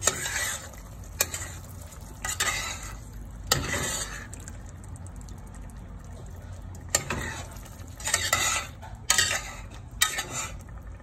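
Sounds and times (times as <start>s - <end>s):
metal spoon scraping a pot: 0.0s - 4.3s, 6.9s - 10.7s
low sizzle of cooking: 0.0s - 11.0s.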